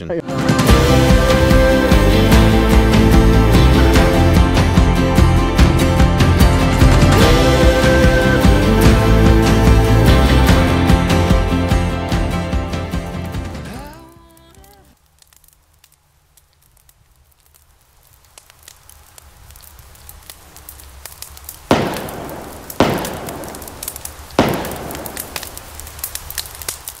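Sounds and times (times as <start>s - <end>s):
background music: 0.0s - 15.0s
campfire crackling: 0.2s - 27.0s
loud sharp pops: 20.2s - 27.0s.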